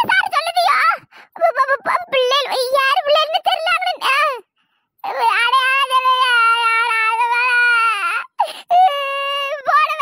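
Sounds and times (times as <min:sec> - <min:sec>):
cartoon voice sobbing: 0:00.7 - 0:02.9, 0:05.0 - 0:10.0
cartoon voice wailing: 0:01.4 - 0:04.3, 0:05.1 - 0:10.0.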